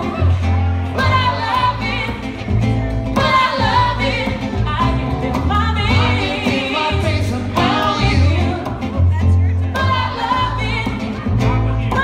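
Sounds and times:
bass line: 0:00.0 - 0:12.0
woman singing: 0:01.0 - 0:02.5, 0:03.2 - 0:09.0, 0:09.7 - 0:11.3.

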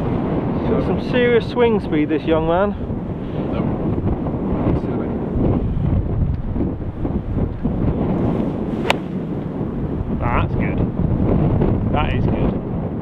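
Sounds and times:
wind buffeting microphone: 0:00.0 - 0:13.0
golf club striking ball: 0:07.6 - 0:09.7.

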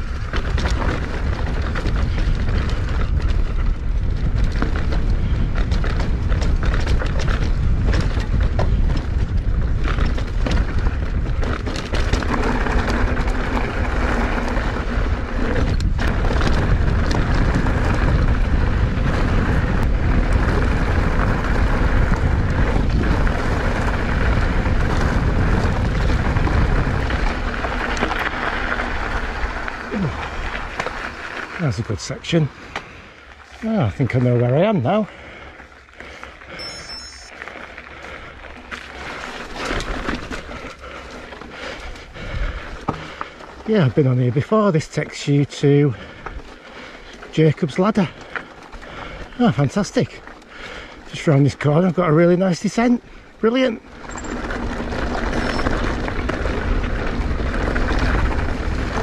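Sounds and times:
wind buffeting microphone: 0:00.0 - 0:36.2, 0:37.7 - 0:44.0, 0:52.9 - 0:59.0
bike rattling over stones: 0:00.0 - 0:59.0
bike tyres rolling on gravel: 0:00.0 - 0:59.0.

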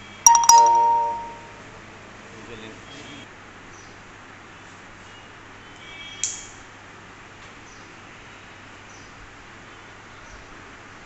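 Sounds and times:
two-note doorbell chime: 0:00.3 - 0:01.6.

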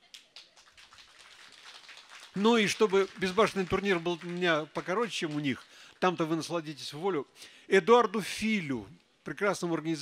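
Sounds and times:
audience clapping: 0:00.0 - 0:06.5
low background noise: 0:00.0 - 0:10.0.

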